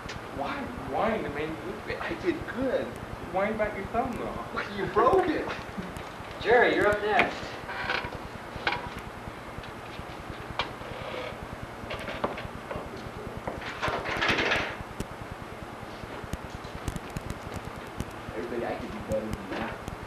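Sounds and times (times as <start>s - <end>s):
indistinct voices talking: 0.4s - 7.7s, 16.9s - 19.8s.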